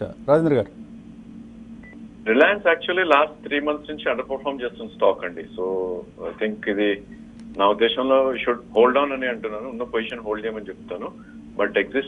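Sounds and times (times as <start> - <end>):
faint steady hum: 0.0 - 12.0
person speaking: 2.3 - 12.0.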